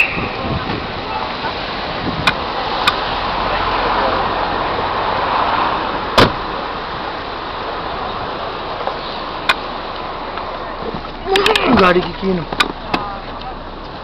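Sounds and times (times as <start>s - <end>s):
road traffic noise: 0.0s - 14.0s.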